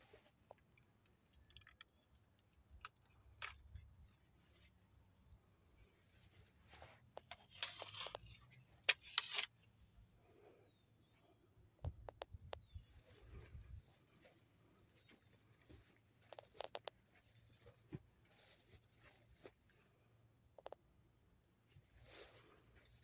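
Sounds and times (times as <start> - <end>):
rustling through leafy plants: 17.3 - 19.4.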